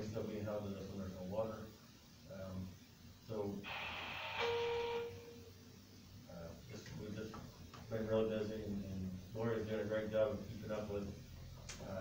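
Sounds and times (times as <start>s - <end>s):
steady flat tone: 0.0s - 12.0s.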